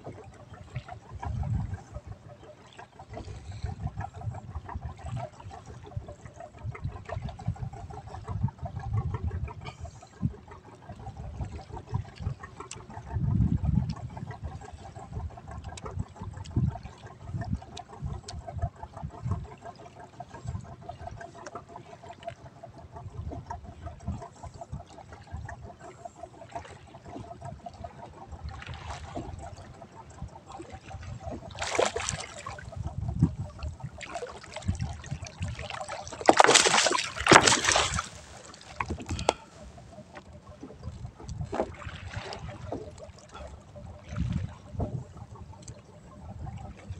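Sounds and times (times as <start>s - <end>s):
wind rumbling on microphone: 0.0s - 21.4s, 22.2s - 46.9s
water sloshing against hull: 0.0s - 46.9s
water splash: 31.5s - 32.6s, 35.6s - 39.4s.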